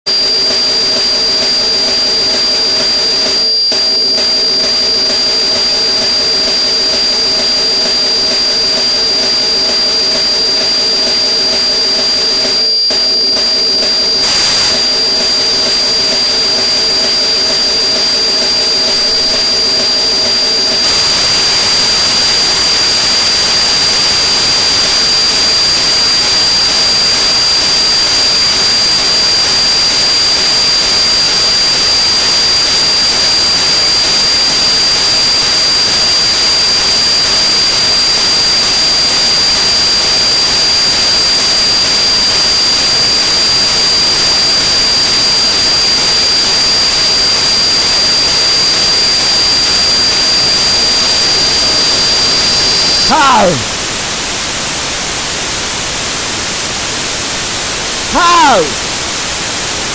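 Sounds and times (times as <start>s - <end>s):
loud electronic hiss: 0.1s - 59.9s.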